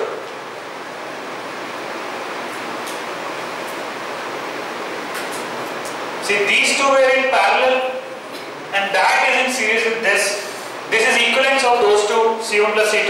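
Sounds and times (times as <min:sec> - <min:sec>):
classroom room noise hiss: 0:00.0 - 0:13.0.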